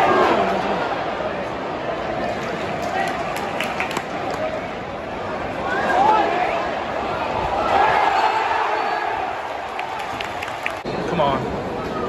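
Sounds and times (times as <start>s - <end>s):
stadium crowd voices: 0.0s - 12.0s
sharp handclaps: 2.8s - 4.4s.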